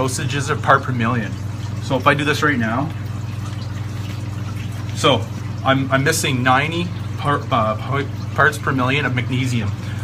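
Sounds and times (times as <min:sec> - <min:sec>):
aquarium equipment humming: 0:00.0 - 0:10.0
water running through pipes: 0:00.0 - 0:10.0.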